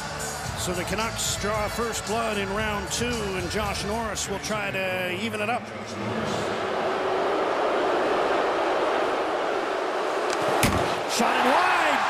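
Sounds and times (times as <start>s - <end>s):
arena crowd din: 0.0s - 12.0s.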